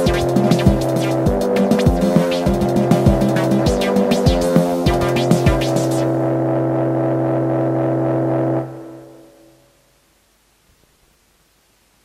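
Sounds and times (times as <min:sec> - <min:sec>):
low synthesizer note: 0:00.0 - 0:09.4.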